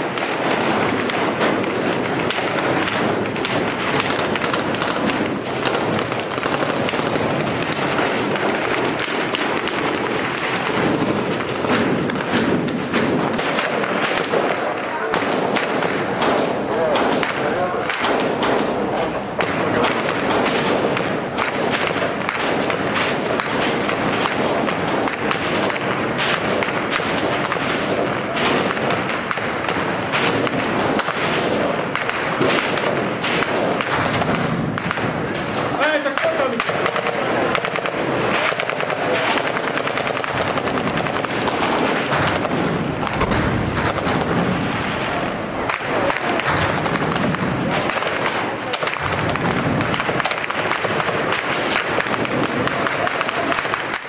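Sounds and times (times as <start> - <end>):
heavy machine gun and rifle fire: 0.0 - 54.0.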